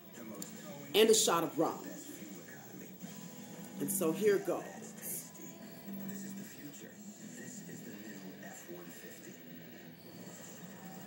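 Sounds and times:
faint background speech: 0.0s - 11.0s
television music: 0.0s - 11.0s.

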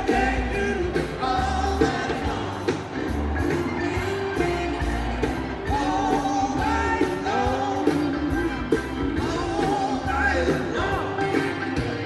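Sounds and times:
man singing: 0.0s - 2.9s, 3.8s - 12.0s
live blues rock band: 0.0s - 12.0s.

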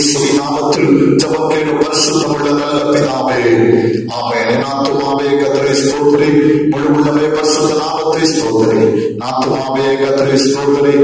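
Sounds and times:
man chanting devotional song: 0.0s - 11.0s.

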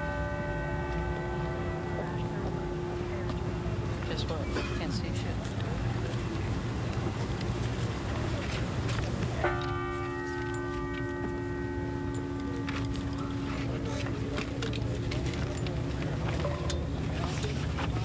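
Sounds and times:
large church bell tolling: 0.0s - 6.5s, 9.4s - 18.0s
crowd murmuring: 0.0s - 18.0s.

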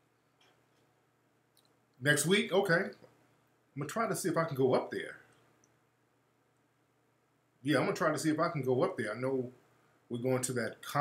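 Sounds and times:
man speaking: 2.0s - 3.1s, 3.8s - 5.3s, 7.6s - 11.0s.

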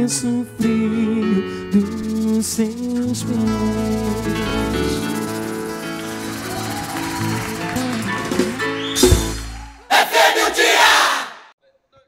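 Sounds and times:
audience cheering and clapping: 4.8s - 11.4s.

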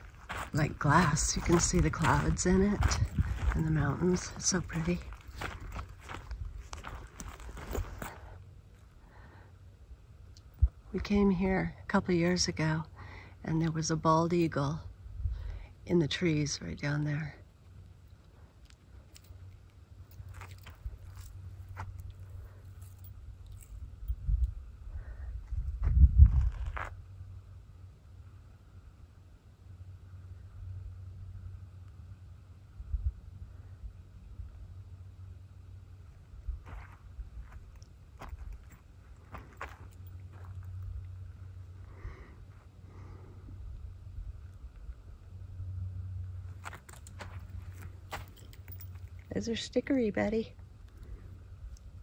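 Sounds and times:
wind rumble on microphone: 0.0s - 8.4s, 10.4s - 11.6s, 14.8s - 15.7s, 20.3s - 27.5s, 32.7s - 34.9s, 36.1s - 42.5s, 43.2s - 49.5s
footsteps on sandy ground: 0.0s - 8.5s, 20.1s - 23.8s, 25.8s - 27.0s, 36.5s - 41.3s, 46.5s - 49.4s.

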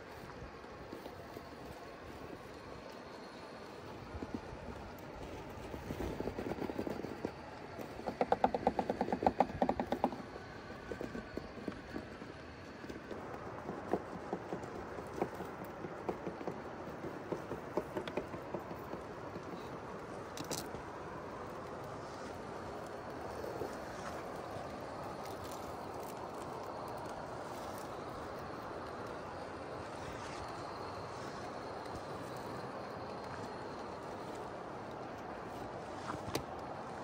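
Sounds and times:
rapid clicking: 0.8s - 22.0s.

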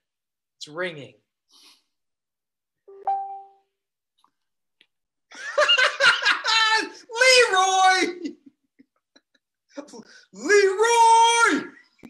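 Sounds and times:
two-tone electronic chime: 2.9s - 3.7s.

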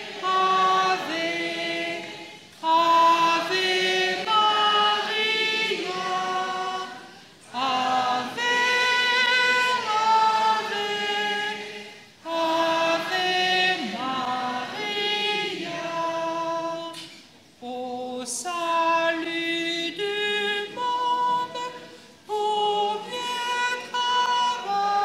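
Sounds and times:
congregation singing a hymn: 0.0s - 25.0s.

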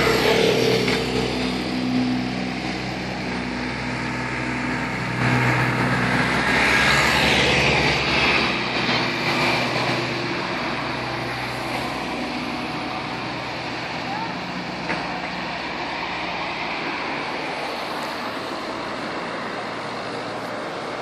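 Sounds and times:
engine running with low hum: 0.0s - 21.0s.

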